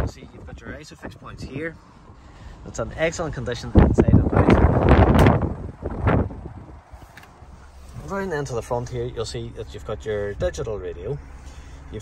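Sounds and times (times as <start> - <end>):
wind buffeting microphone: 0.0 - 2.2, 2.8 - 8.1.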